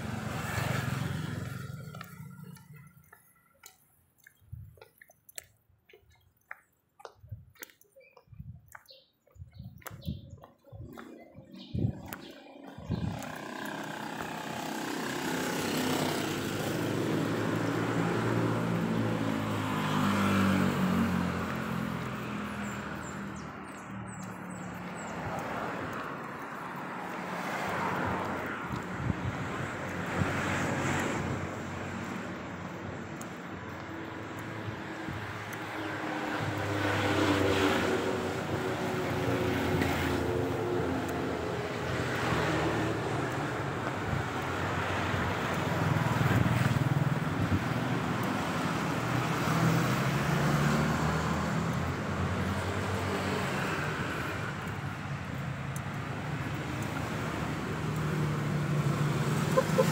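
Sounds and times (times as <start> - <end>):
vehicles passing: 0.0 - 59.9.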